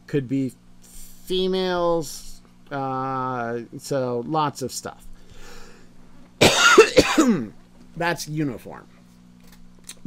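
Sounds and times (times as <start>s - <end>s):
man coughing: 6.4s - 7.5s.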